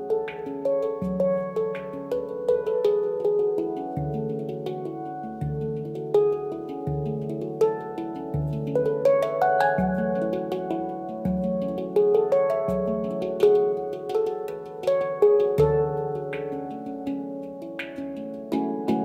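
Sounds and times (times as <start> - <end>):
handpan high ringing notes: 0.0 - 19.0
handpan low bass notes: 0.0 - 19.0.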